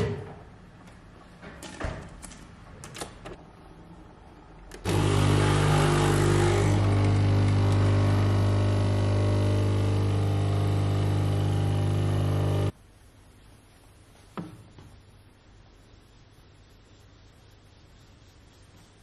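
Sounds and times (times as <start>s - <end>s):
coffee machine pump buzzing: 4.8s - 12.7s.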